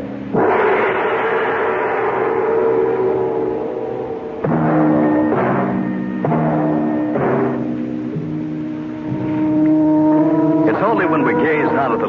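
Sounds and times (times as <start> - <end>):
gong ringing: 0.0 - 12.0.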